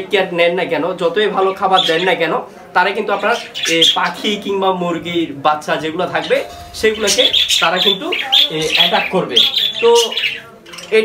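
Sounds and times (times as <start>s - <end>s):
parrots squawking: 1.5s - 2.2s, 3.1s - 4.4s, 6.9s - 11.0s.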